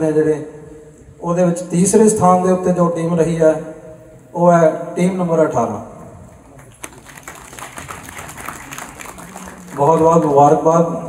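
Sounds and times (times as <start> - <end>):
audience applauding: 6.5 - 10.7.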